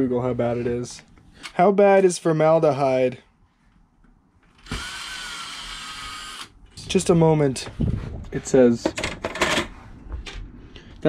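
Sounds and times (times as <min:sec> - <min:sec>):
cordless drill whining: 0:04.6 - 0:06.5.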